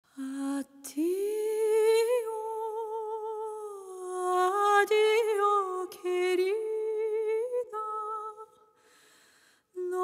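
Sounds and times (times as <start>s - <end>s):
woman singing unaccompanied: 0.2s - 8.5s, 9.8s - 10.0s.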